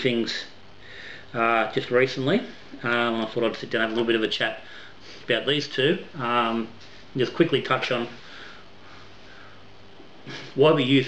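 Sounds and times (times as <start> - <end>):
low room hum: 0.0 - 11.0
man sniffing: 10.2 - 10.6.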